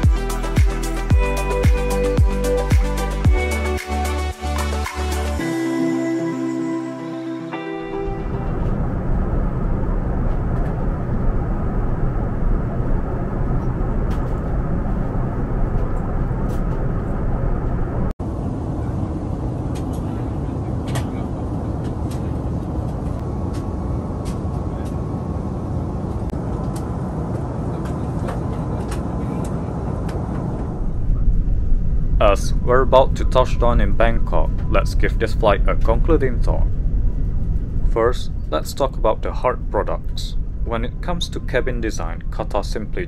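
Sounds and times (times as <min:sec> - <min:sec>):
airplane cabin airflow and engine noise: 0:05.4 - 0:43.0.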